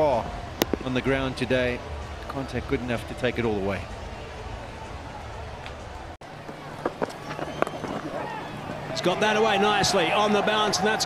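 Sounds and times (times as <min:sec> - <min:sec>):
outdoor field ambience: 0:00.0 - 0:11.0.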